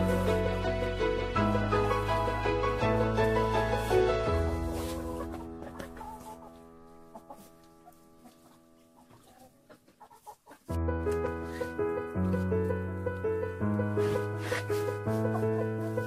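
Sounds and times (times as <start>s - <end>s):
background music with sustained notes: 0.0s - 9.8s, 10.4s - 16.0s
hens clucking: 0.0s - 10.8s, 14.0s - 16.0s.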